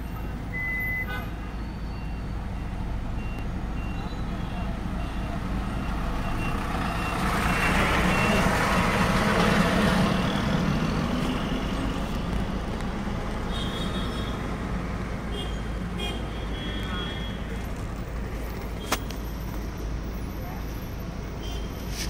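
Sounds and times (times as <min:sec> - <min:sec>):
engine and road rumble: 0:00.0 - 0:22.0
traffic rush: 0:00.0 - 0:22.0.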